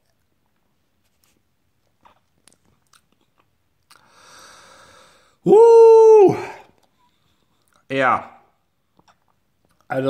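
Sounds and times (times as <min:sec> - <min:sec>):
mouth clicks and lip smacks: 0:00.0 - 0:04.1, 0:06.7 - 0:07.9, 0:08.9 - 0:09.9
soft breathy exhale: 0:04.0 - 0:05.4.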